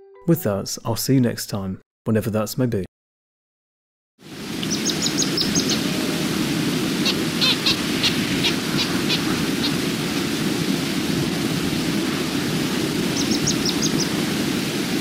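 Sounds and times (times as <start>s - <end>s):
bird chirping: 4.6s - 5.8s, 13.2s - 14.1s.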